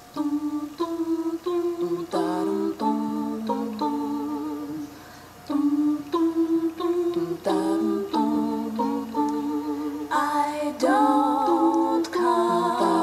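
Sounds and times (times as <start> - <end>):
wordless humming of pitched notes: 0.0 - 13.0.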